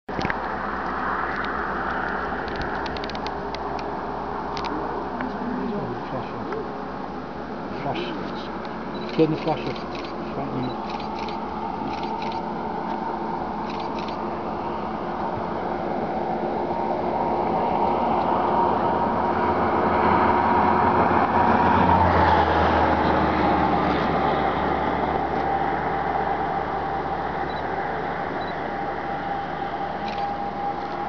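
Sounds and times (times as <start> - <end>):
motor vehicle passing by: 0.3 - 31.0.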